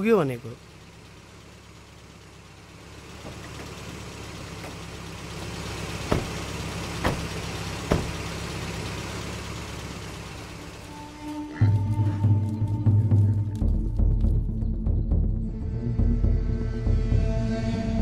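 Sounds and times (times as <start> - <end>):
car engine running: 0.0 - 18.0
car doors clunking: 3.2 - 8.5.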